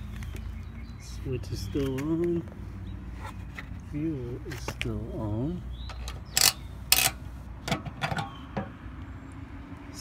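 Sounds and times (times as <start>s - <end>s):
metal fuel cap clicks and scrapes: 5.8s - 8.7s.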